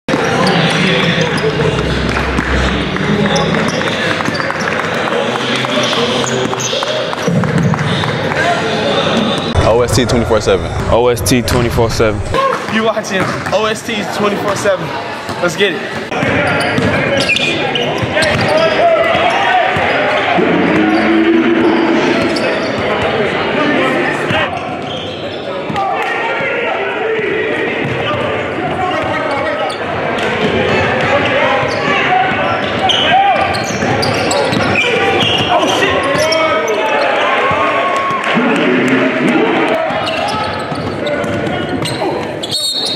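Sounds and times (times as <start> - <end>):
voices in a gymnasium: 0.1 - 42.9
background voices: 9.6 - 12.4.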